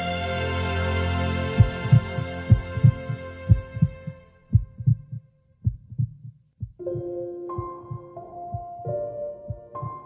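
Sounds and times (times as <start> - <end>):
sustained music chord: 0.0 - 4.4
heartbeat thumps: 1.6 - 10.0.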